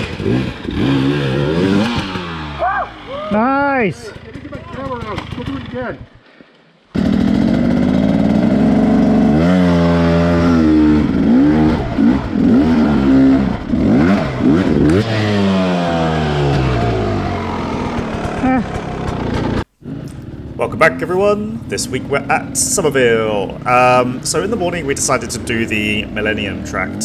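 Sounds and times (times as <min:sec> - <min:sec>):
dirt bike engine revving: 0:00.0 - 0:06.1, 0:07.0 - 0:27.0.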